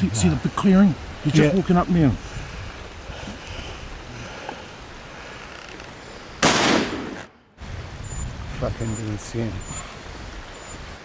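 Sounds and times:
faint outdoor background: 0.0 - 11.0
rifle shot: 6.4 - 7.3.

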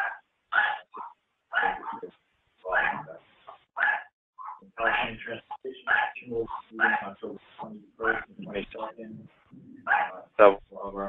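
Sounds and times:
indistinct speech: 1.6 - 3.2, 4.6 - 11.0.

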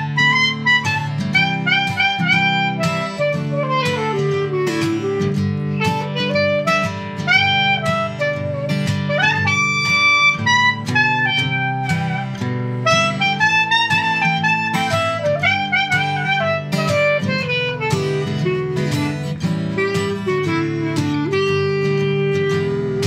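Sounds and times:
clarinet melody: 0.0 - 23.0
strummed acoustic guitar: 0.0 - 23.0.

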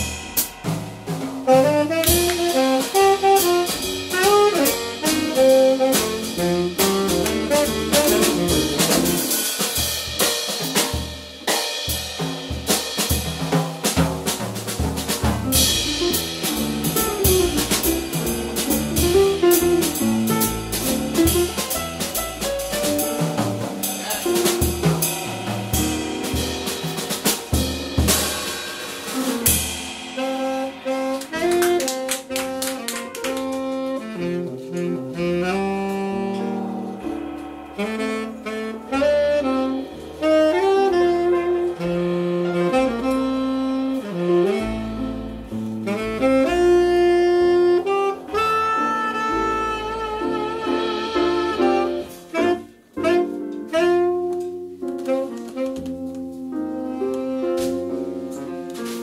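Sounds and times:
drum kit with busy cymbals: 0.0 - 59.0
upright bass: 0.6 - 9.4, 13.3 - 28.3, 33.3 - 52.9
tenor saxophone solo: 1.5 - 9.6, 15.6 - 22.1, 30.2 - 37.1, 37.8 - 59.0.

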